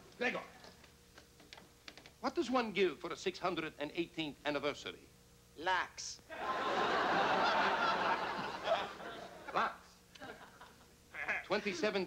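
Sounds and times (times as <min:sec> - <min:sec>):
audience laughing: 0:06.3 - 0:09.6.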